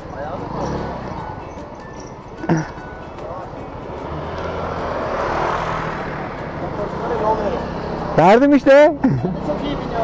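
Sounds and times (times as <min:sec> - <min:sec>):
road and wind noise: 0:00.0 - 0:10.0
scooter engine running: 0:00.0 - 0:10.0.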